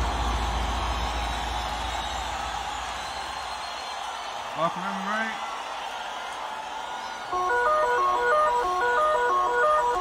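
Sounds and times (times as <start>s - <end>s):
electronic dance music: 7.3s - 10.0s
bright synth riff: 7.4s - 10.0s.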